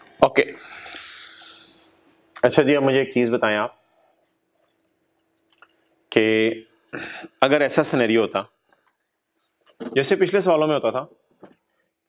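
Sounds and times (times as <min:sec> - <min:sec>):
faint steady hum: 0:00.0 - 0:12.0
man speaking: 0:10.0 - 0:11.1.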